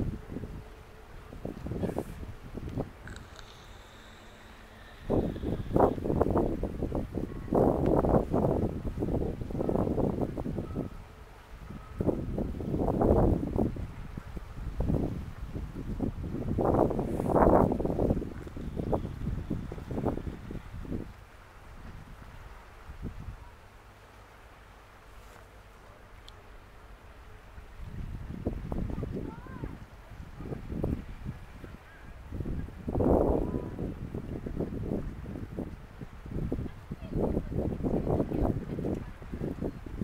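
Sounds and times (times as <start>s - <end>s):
wind buffeting microphone: 0.0s - 23.7s, 27.3s - 40.0s.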